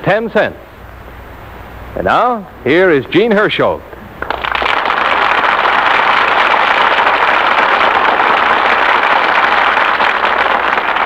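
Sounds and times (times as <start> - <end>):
audience applauding: 4.2 - 11.0.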